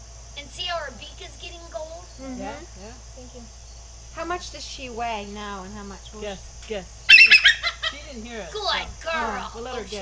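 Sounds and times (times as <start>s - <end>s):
steady low hum: 0.0s - 10.0s
soft voice: 2.2s - 3.4s.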